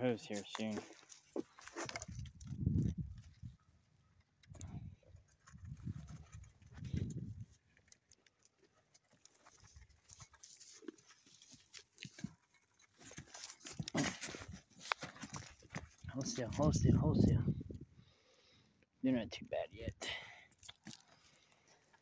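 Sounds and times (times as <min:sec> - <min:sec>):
goat crunching feed: 0:00.0 - 0:16.7, 0:20.5 - 0:22.0.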